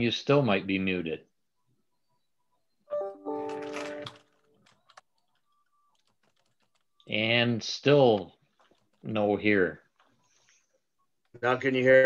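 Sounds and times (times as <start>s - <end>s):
faint clicks: 4.0s - 7.1s.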